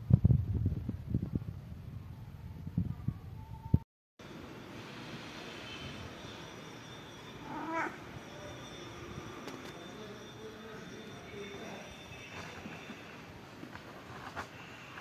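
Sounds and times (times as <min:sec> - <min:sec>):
cat meowing: 0:07.4 - 0:08.0.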